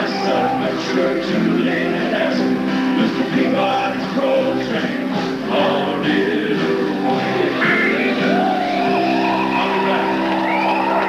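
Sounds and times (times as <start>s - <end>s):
live country band: 0.0s - 11.0s.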